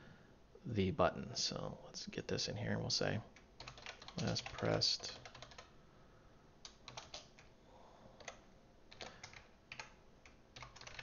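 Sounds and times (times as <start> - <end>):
faint keyboard typing: 3.3 - 5.8, 6.6 - 7.6, 8.2 - 11.0.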